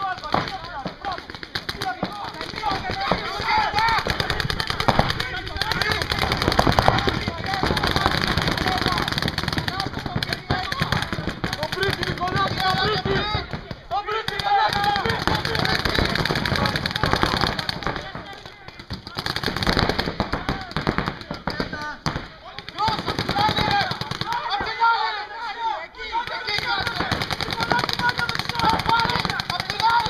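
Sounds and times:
paintball markers firing: 0.0s - 24.8s, 26.3s - 30.0s
players shouting: 0.0s - 30.0s.

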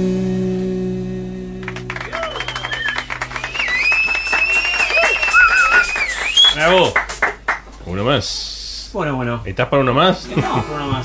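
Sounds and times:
people clapping: 1.6s - 7.7s
long high whistle: 1.9s - 6.7s.

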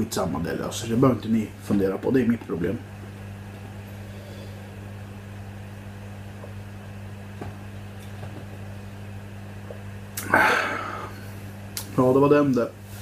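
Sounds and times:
steady low hum: 0.0s - 13.0s
loud breathy burst: 3.9s - 4.8s, 10.2s - 11.5s.

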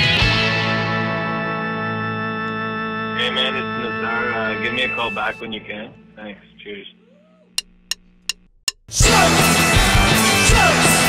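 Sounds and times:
low amplifier hum: 6.4s - 8.8s.

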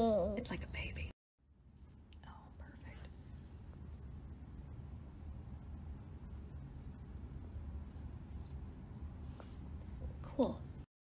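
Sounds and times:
soft whisper: 2.1s - 3.6s.

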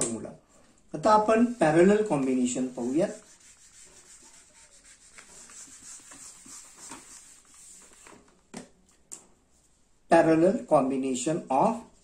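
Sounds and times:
duster rubbing a whiteboard: 1.3s - 8.2s.

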